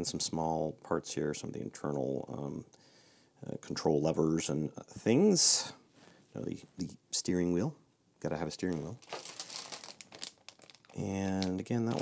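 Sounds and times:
plastic bag crinkling: 8.6 - 12.0.

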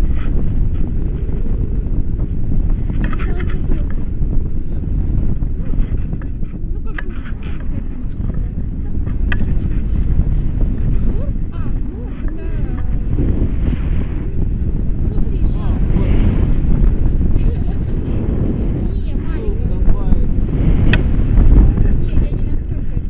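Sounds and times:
wind buffeting microphone: 0.0 - 23.0.

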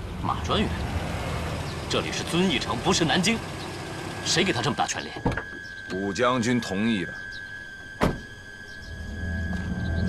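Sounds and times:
car door slamming: 8.0 - 8.3.

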